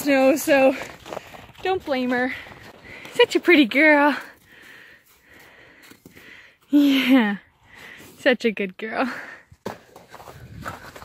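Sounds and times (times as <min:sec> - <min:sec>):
horse breathing and snuffling: 0:09.8 - 0:11.0.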